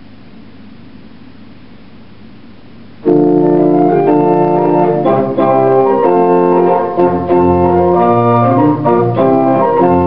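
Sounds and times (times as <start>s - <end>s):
pipe organ playing chords: 3.0s - 10.0s.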